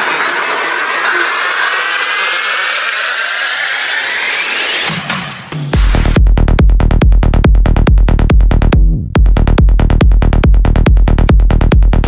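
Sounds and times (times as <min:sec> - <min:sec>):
whistling tones gliding upward: 0:00.0 - 0:04.9
rising white-noise sweep: 0:00.0 - 0:06.2.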